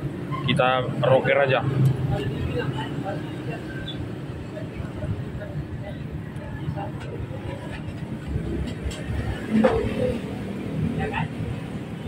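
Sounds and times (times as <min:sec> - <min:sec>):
workshop background rumble: 0:00.0 - 0:12.0.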